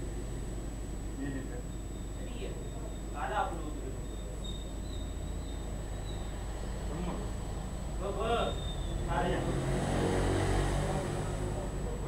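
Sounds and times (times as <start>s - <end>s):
voices: 1.2s - 12.0s
vehicle engine passing: 6.4s - 12.0s.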